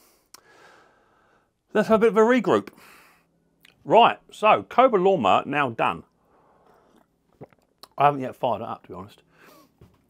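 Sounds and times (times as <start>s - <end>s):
sipping and swallowing: 6.1s - 8.0s.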